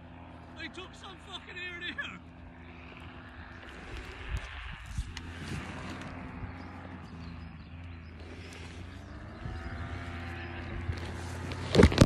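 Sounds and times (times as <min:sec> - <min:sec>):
paramotor engine running: 0:00.0 - 0:12.0.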